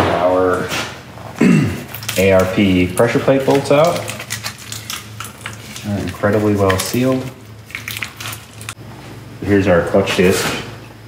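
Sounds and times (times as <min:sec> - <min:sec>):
plastic package crinkling: 0:01.9 - 0:08.8.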